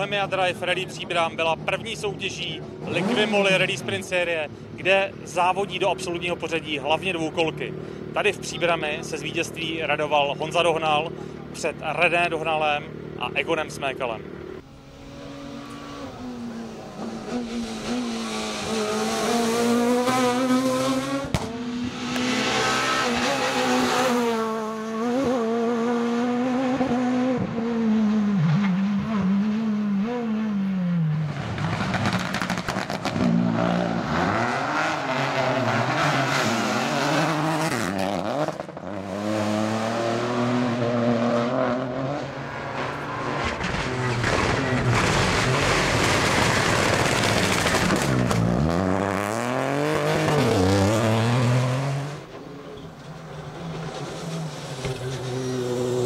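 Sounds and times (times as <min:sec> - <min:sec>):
rally cars passing at full throttle: 0:00.0 - 0:56.0.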